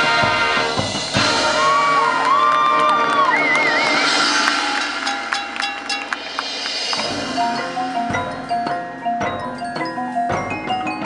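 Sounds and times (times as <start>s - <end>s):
marching band sustained chord: 0.0s - 2.0s
crowd cheering and whooping: 1.3s - 6.3s
mallet percussion strikes: 4.3s - 11.0s.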